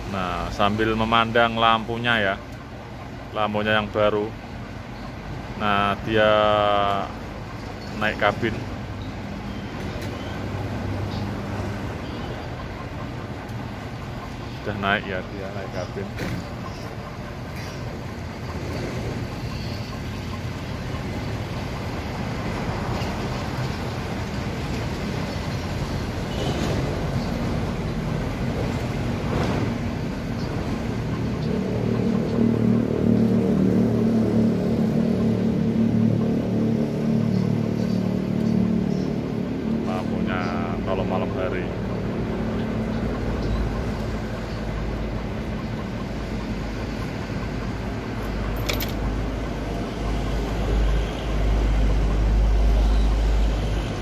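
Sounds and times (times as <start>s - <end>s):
diesel truck engine running: 0.0s - 54.0s
truck rumbling as it moves: 0.0s - 54.0s.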